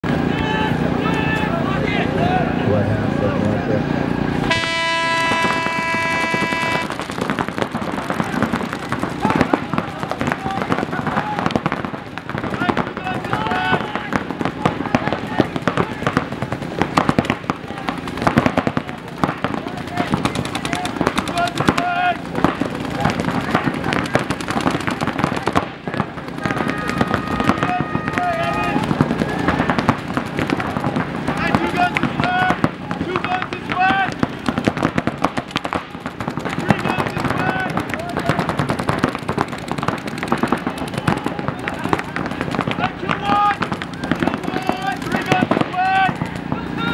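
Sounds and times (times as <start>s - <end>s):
paintball markers firing: 5.3s - 46.9s.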